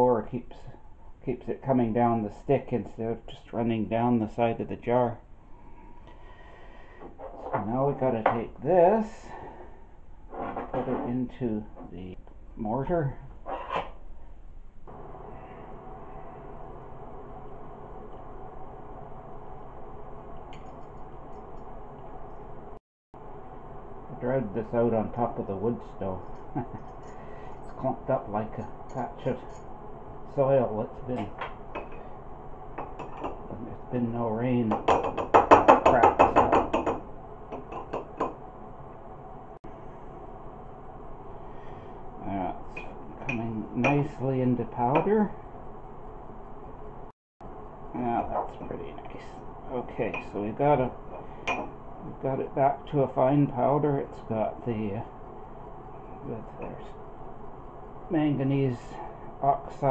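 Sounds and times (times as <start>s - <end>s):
hum of held tones: 0.0s - 59.9s
taps and clinks on glass beaker: 51.4s - 51.7s.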